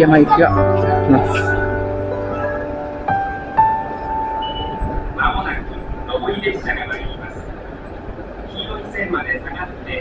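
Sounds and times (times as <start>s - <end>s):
recorded platform announcement: 0.0s - 3.2s, 4.0s - 10.0s.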